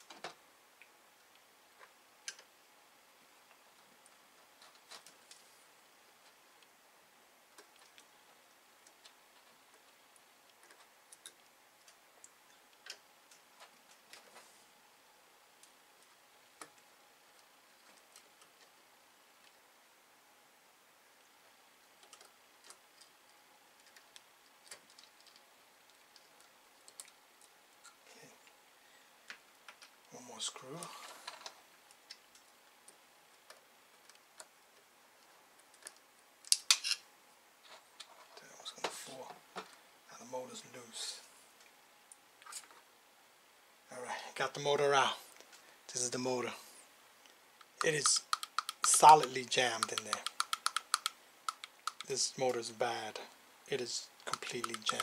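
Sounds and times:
screwdriver clicks on small metal parts: 47.7s - 52.1s, 54.3s - 55.0s.

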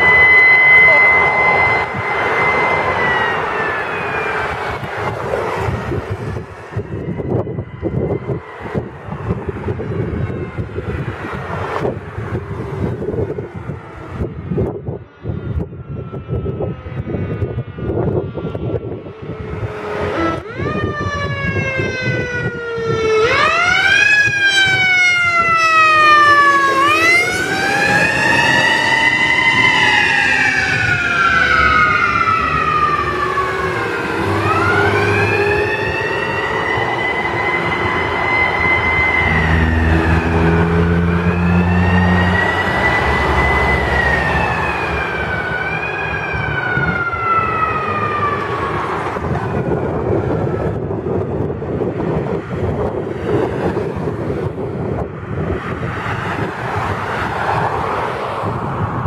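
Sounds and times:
fire truck siren wailing: 0.0s - 59.0s
wind noise on microphone: 0.0s - 59.0s.

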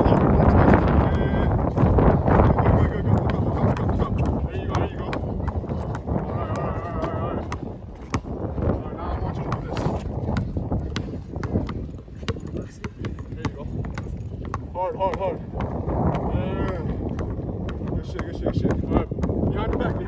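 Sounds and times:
basketball bouncing on brick: 2.8s - 8.4s, 9.4s - 20.0s.

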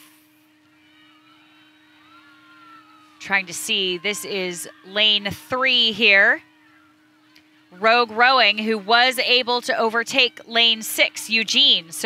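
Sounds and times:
electrical hum: 0.0s - 12.0s
faint motor whine: 0.0s - 12.0s.

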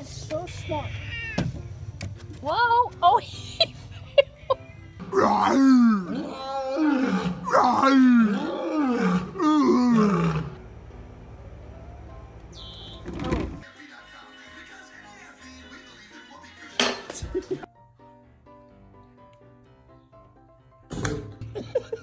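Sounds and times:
lion roaring: 5.1s - 10.6s.

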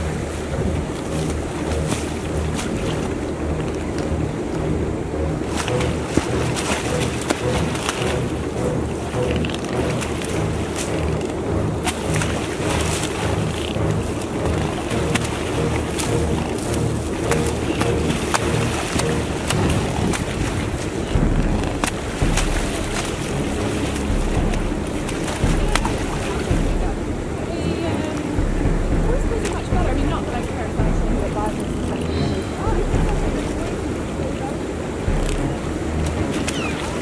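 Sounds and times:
swans splashing in water: 0.0s - 37.0s
wind rumble on microphone: 0.0s - 37.0s.

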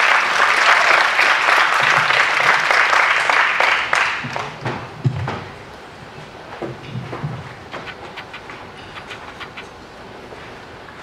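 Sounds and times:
footsteps and knocks on stage: 4.2s - 5.6s, 6.2s - 9.0s.

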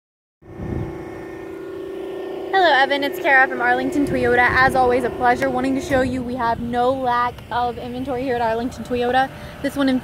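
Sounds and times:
machine hum with low rumble: 0.4s - 10.0s.

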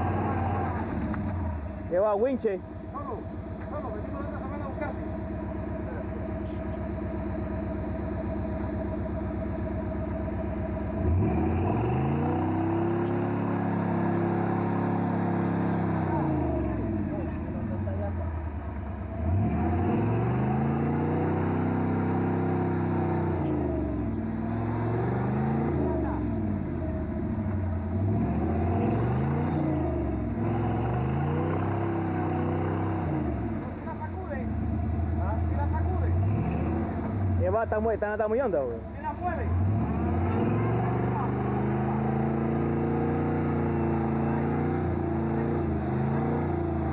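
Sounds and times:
truck engine revving: 0.0s - 46.9s.

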